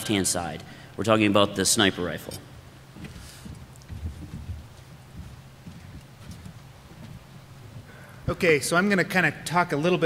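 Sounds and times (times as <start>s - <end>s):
steady low hum: 0.0s - 10.0s
footsteps and knocks on stage: 2.9s - 7.9s.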